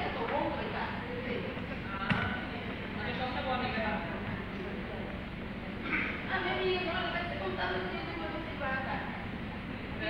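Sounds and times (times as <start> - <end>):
woman speaking: 0.0 - 2.8, 6.2 - 9.3.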